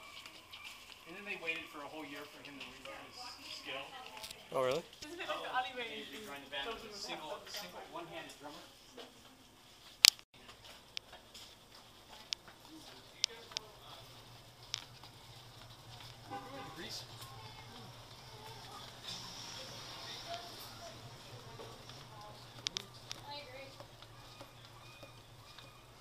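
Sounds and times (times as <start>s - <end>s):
footsteps on pavement: 0.0s - 4.4s, 10.4s - 26.0s
faint voices: 12.0s - 26.0s.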